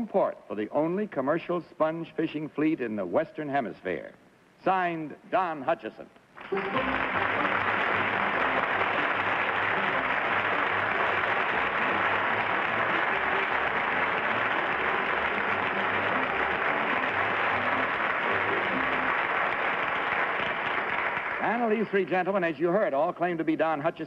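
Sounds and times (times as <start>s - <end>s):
music playing: 6.4s - 21.8s
audience applauding: 6.4s - 22.0s.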